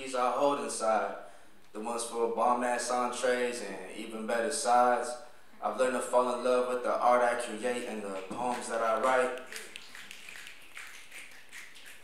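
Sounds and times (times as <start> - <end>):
light claps: 8.1 - 12.0
audience finger snaps: 8.2 - 12.0.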